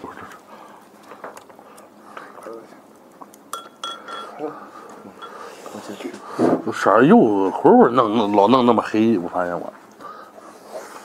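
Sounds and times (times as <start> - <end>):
chopsticks clinking on ceramic: 3.4 - 4.4, 5.1 - 5.7.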